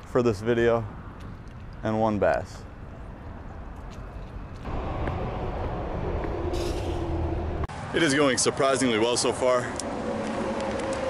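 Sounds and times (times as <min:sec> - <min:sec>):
highway traffic: 0:00.0 - 0:11.0
truck passing: 0:04.3 - 0:11.0.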